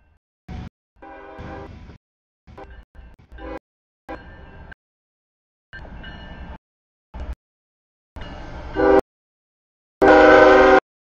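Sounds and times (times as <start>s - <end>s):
train air horn blasts: 1.0s - 1.7s, 3.3s - 3.6s, 8.8s - 9.0s, 10.0s - 10.8s.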